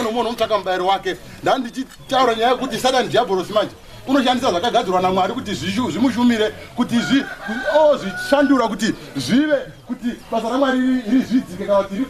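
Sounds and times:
man preaching: 0.0 - 12.0.

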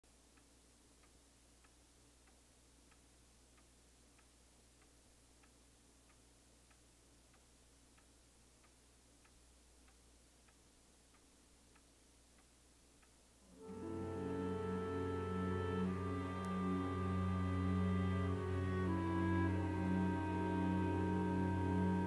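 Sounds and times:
low hum and hiss: 0.0 - 22.0
clock ticking: 0.1 - 13.8.

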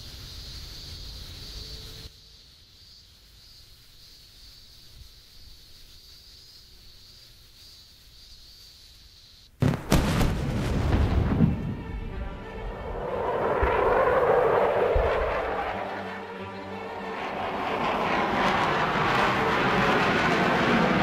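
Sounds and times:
explosion blast: 9.6 - 15.7
music: 10.9 - 13.0, 16.0 - 17.5
jet aircraft roaring overhead: 11.3 - 21.0.

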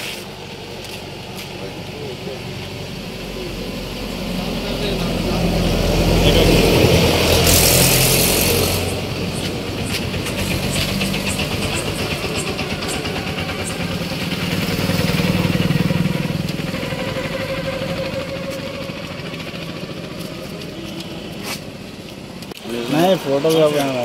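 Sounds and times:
vehicle engine running: 0.0 - 24.0.

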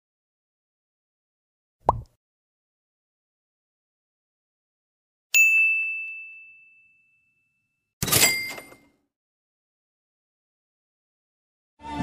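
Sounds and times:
bright bell-like ding: 5.4 - 7.6.

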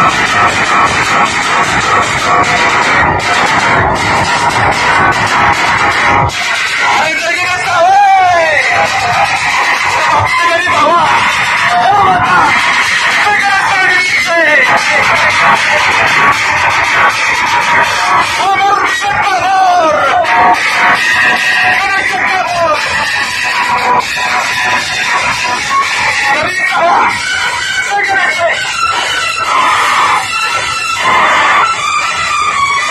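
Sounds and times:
loud music with steady beat: 0.0 - 32.9
shrill high-pitched synth lead: 0.0 - 32.9.

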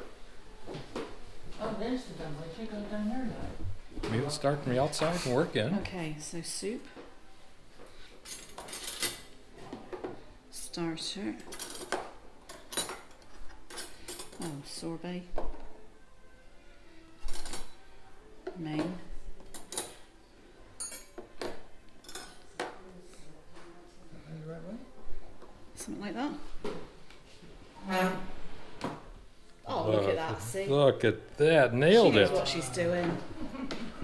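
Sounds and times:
cutlery clinking: 8.2 - 9.4, 11.4 - 14.5, 17.2 - 17.9, 19.4 - 20.1, 20.8 - 22.8.

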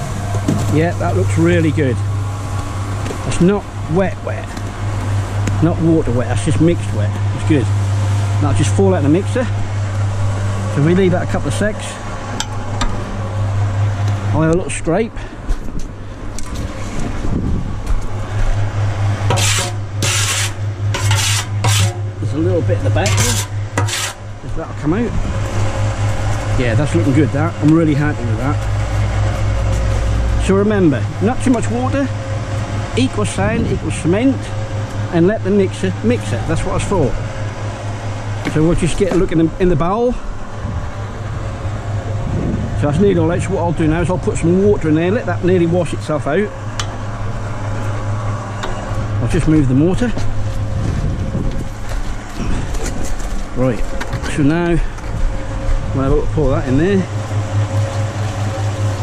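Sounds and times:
cement mixer humming: 0.0 - 59.0.

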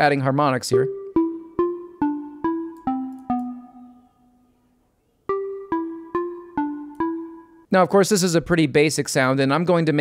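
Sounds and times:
synthesizer plucked notes: 0.7 - 4.4, 5.3 - 7.7.

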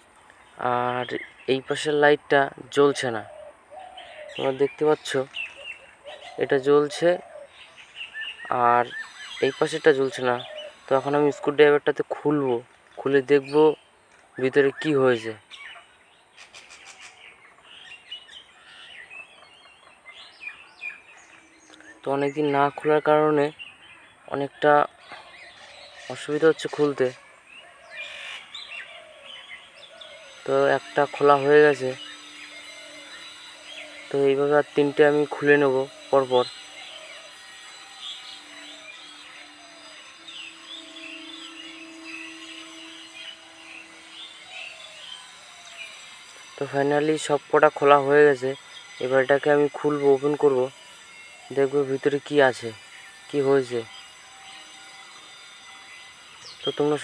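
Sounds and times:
small birds chirping: 0.0 - 57.0.

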